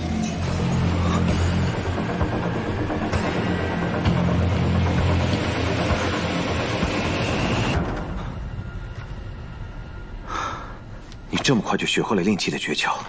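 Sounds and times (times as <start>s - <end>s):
film soundtrack music: 0.0s - 13.0s.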